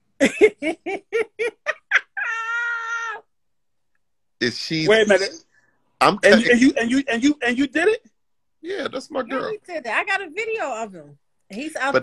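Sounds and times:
high-pitched drawn-out cry: 2.1 - 3.3.

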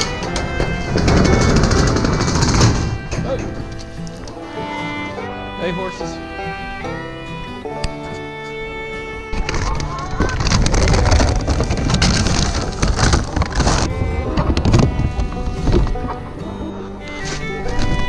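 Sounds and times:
background music: 0.0 - 18.0
plastic bag rustling: 9.3 - 16.0.

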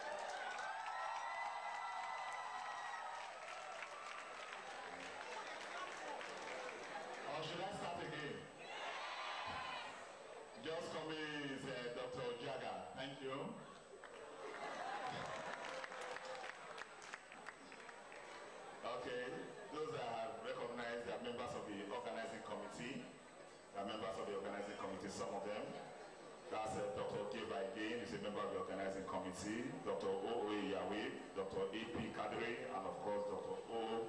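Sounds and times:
voices cheering: 0.0 - 7.1
audience applauding: 0.0 - 7.6, 14.0 - 18.7.

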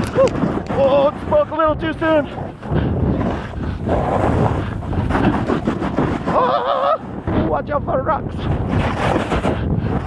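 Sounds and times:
wind noise on microphone: 0.0 - 10.0
snowboard scraping snow: 3.2 - 7.0, 8.4 - 10.0.

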